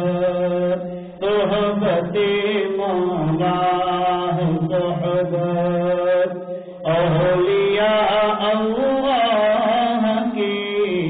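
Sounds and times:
person chanting in long held notes: 0.0 - 11.0.

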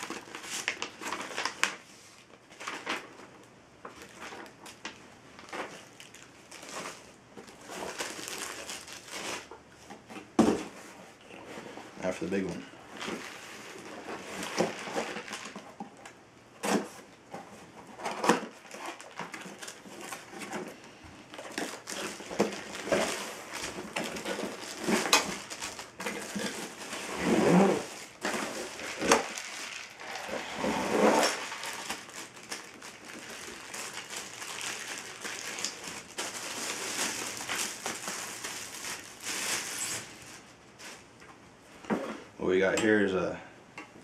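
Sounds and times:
plastic wrap crinkling: 0.0 - 10.0, 12.0 - 41.2
cardboard scraping: 21.5 - 34.1.

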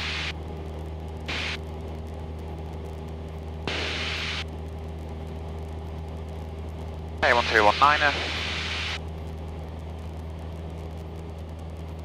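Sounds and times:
radio hiss bursts: 0.0 - 0.3, 1.3 - 1.6, 3.7 - 4.4, 7.2 - 9.0
airplane engine droning: 0.0 - 12.0.

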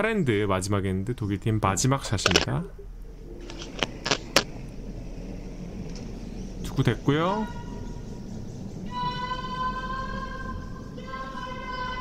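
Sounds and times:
sharp clicks: 2.2 - 2.5, 3.4 - 4.5
curling stone rumbling on ice: 3.4 - 4.5.

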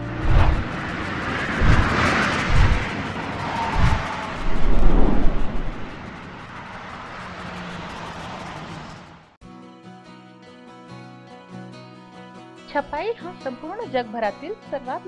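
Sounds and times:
low rumble: 0.0 - 7.4
whooshes: 0.0 - 8.6
soft rushing noise: 0.0 - 9.0.

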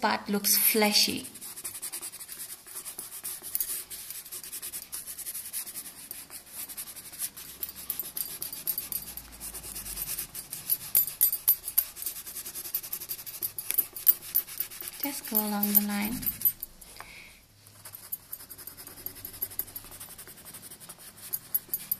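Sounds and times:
pencil shading on paper: 1.3 - 11.1, 11.7 - 16.4, 17.8 - 21.9.

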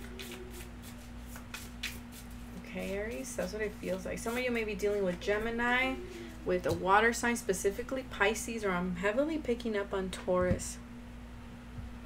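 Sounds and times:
cards being shuffled: 0.0 - 2.6
low electrical hum: 0.0 - 12.0.

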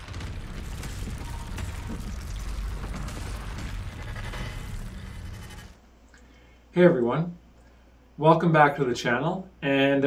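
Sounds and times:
debris clicking and rattling: 0.0 - 5.8
low rumble: 0.0 - 5.9.

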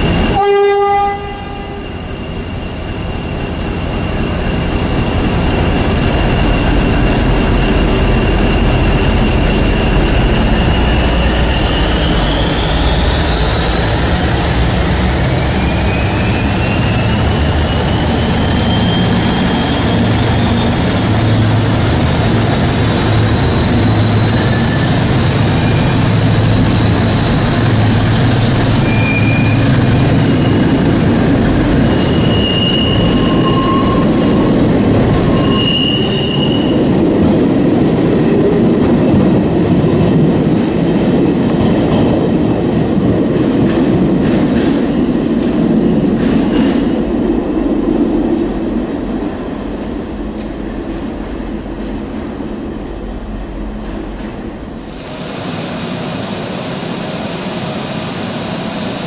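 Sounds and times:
wheels rumbling on rail: 0.0 - 59.0
high wheel squeals: 8.3 - 21.0, 28.8 - 31.0, 31.8 - 37.0.

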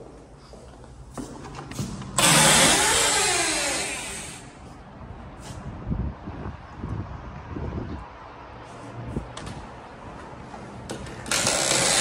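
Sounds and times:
balcony door opening: 1.7 - 4.4, 10.8 - 12.0
rush of wind: 4.8 - 10.4.

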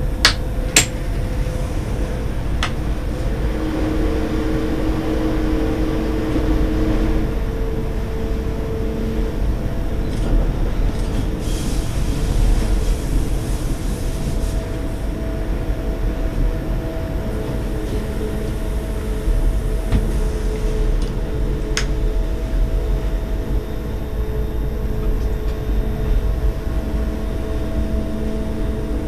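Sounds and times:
humming tone: 0.0 - 29.0
train wheels rumbling on rail: 0.0 - 29.0.

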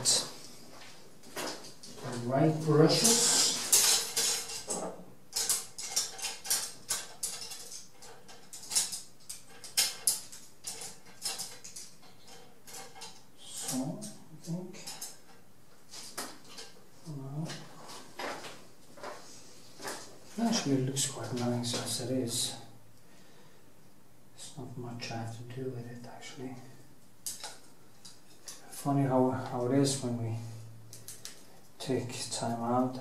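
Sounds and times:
small tools clicking and clinking: 3.0 - 15.4, 27.2 - 28.6.

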